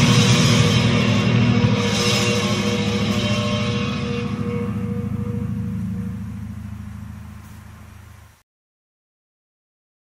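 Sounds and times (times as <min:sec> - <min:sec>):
rock chord ringing: 0:00.0 - 0:08.4.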